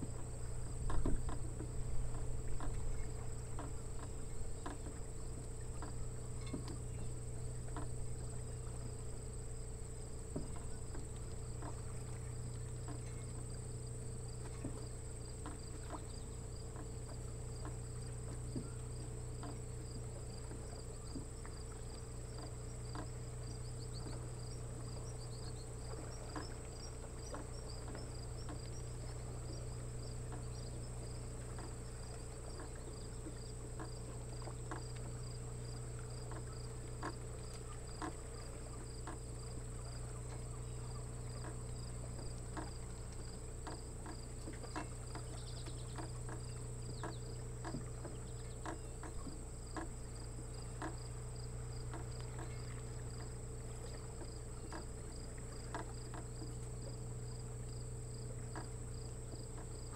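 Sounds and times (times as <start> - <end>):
faint ticks: 0.0 - 59.9
insects chirping: 0.0 - 59.9
low hum: 0.0 - 59.9.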